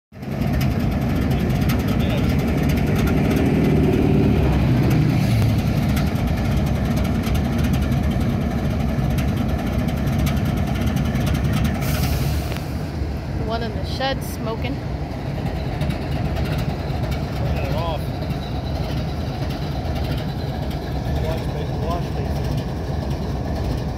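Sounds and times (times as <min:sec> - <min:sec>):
diesel locomotive engines idling: 0:00.2 - 0:23.9.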